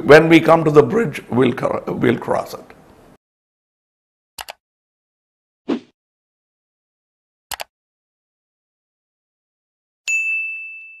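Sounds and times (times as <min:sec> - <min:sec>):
bell ding: 0:10.1 - 0:11.0.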